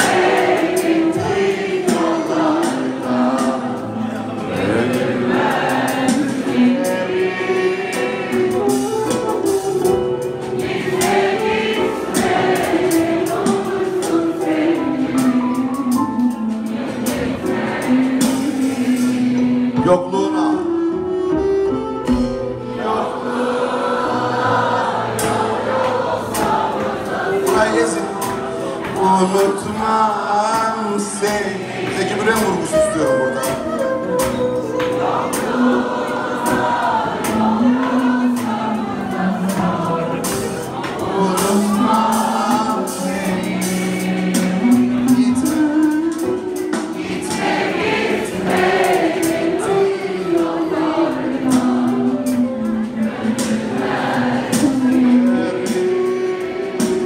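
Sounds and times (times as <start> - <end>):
drum hits: 0.0 - 3.8, 8.3 - 19.0, 24.3 - 56.0
steady cymbal beat: 0.0 - 19.8, 24.0 - 57.0
crowd singing along: 0.0 - 20.5, 22.1 - 57.0
live band music: 0.0 - 57.0.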